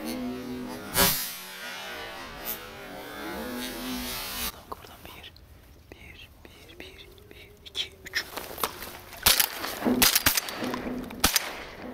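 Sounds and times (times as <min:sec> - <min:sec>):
person whispering: 0:04.4 - 0:09.2.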